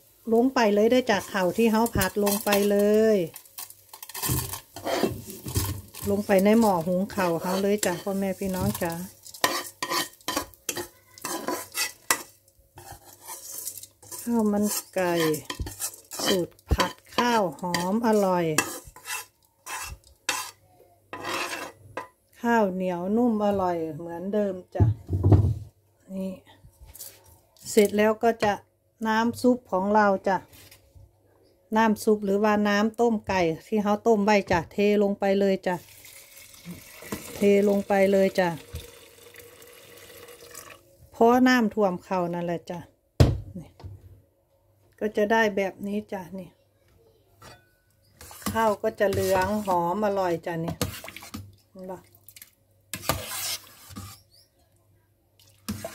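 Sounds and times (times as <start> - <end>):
spatula scraping frying pan: 3.4 - 21.8, 47.5 - 50.1, 52.9 - 54.4, 55.7 - 55.9.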